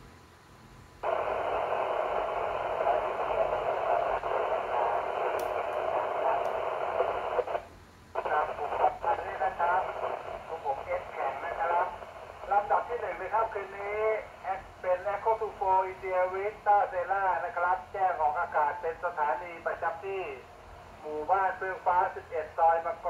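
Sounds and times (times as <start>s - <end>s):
voice over radio speaker: 1.0s - 7.6s, 8.2s - 23.0s
radio static hiss: 1.0s - 23.0s.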